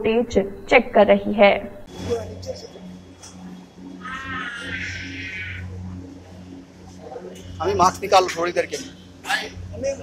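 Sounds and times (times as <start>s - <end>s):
low steady hum: 0.0s - 10.0s
high-pitched wailing cry: 4.0s - 5.7s.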